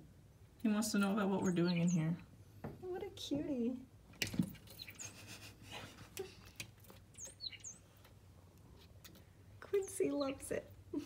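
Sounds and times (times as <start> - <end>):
songbird chirping: 0.0 - 11.0.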